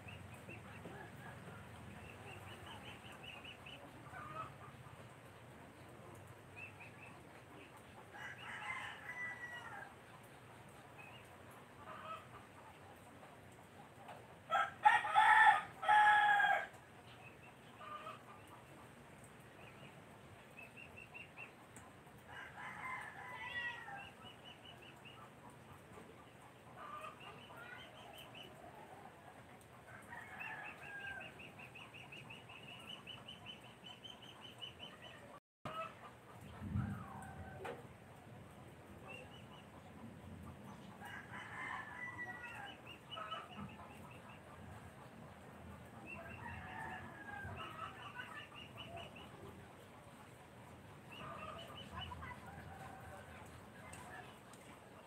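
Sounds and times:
rooster crowing: 8.2 - 9.9, 41.1 - 42.7.

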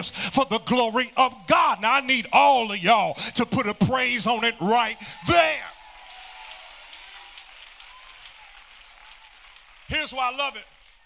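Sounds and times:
faint scattered clapping: 6.0 - 11.0.

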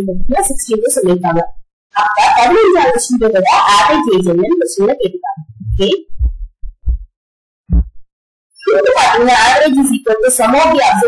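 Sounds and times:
low thumps: 5.4 - 7.1, 7.7 - 8.0.

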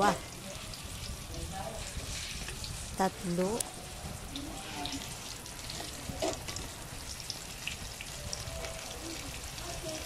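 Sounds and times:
chicken frying in hot oil: 0.0 - 10.0.

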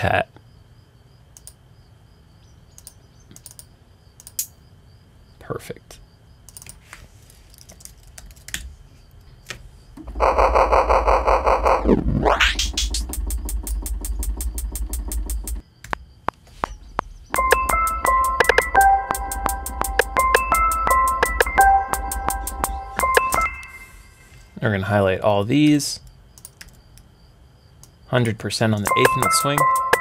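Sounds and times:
mouse clicks: 2.8 - 4.5
trap beat with deep bass: 12.4 - 15.6, 16.6 - 23.8, 28.8 - 30.0
closed hi-hat ticks: 12.6 - 23.7, 27.8 - 30.0
bell-like melody notes: 17.3 - 24.4, 28.9 - 30.0.

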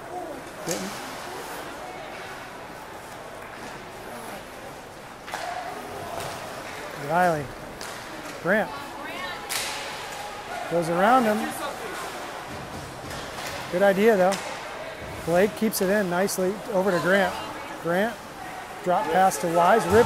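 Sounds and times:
puck and sticks knocking boards: 12.0 - 15.2.

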